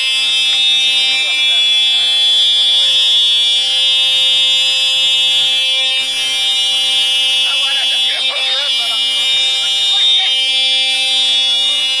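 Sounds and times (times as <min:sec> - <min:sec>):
loud steady buzzing tone: 0:00.0 - 0:12.0.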